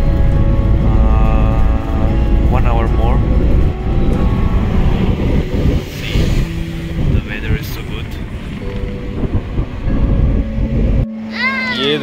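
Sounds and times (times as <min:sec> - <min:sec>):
road noise inside car: 0:00.0 - 0:12.0
wind buffeting through window: 0:01.7 - 0:11.1.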